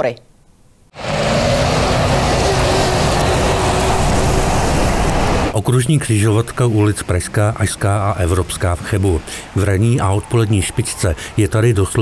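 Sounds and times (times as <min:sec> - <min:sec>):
lorry rumbling past: 0:00.9 - 0:12.0.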